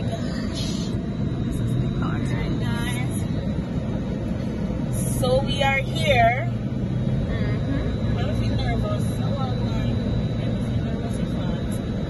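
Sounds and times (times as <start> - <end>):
car engine rumble: 0.0 - 12.0
road noise: 0.0 - 12.0.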